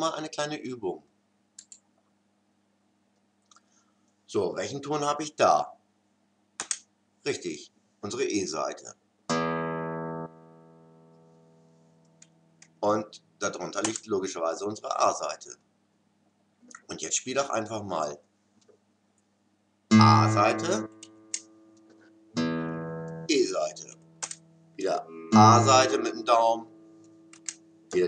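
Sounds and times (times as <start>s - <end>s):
guitar string plucked: 19.9s - 21.5s, 22.4s - 28.0s.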